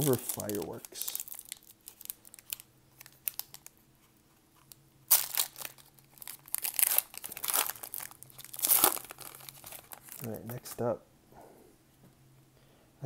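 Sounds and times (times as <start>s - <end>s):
foil wrapper crinkling: 0.0s - 3.8s, 4.6s - 10.8s
foil wrapper tearing: 0.0s - 3.8s, 4.6s - 10.8s.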